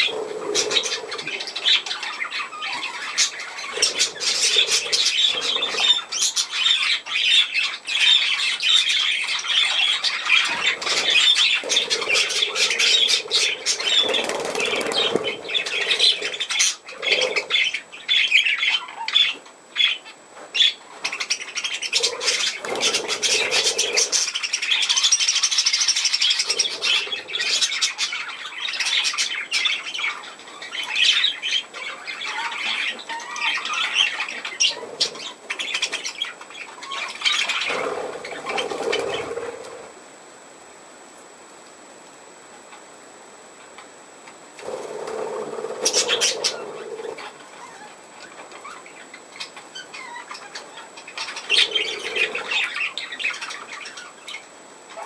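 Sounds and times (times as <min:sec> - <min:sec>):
budgerigars chattering and squawking: 0:00.0 - 0:39.9, 0:44.6 - 0:55.0
wing flutters: 0:10.5 - 0:17.4, 0:37.6 - 0:40.0, 0:44.6 - 0:47.4.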